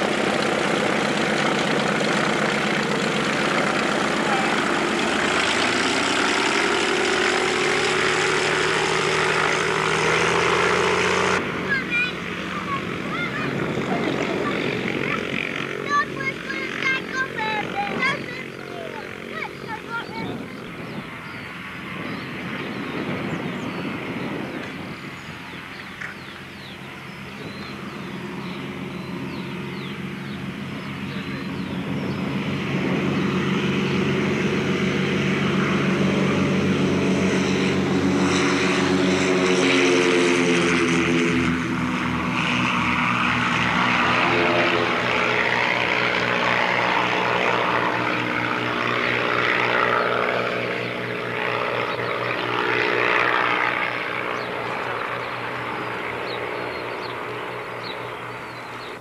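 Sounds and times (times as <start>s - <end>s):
propeller aeroplane taking off: 0.0s - 59.0s.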